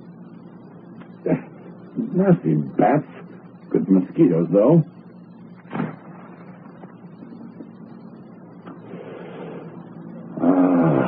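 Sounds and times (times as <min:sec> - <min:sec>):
faint low hum: 0:00.0 - 0:11.0
radio recording hiss: 0:00.0 - 0:11.0.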